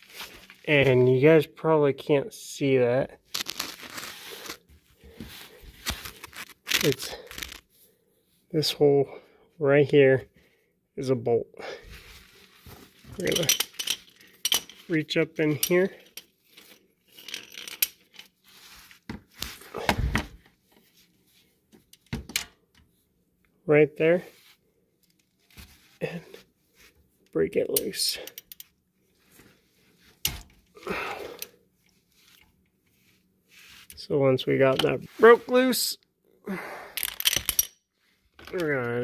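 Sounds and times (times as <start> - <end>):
rustling: 0.0 - 1.1, 3.3 - 7.6.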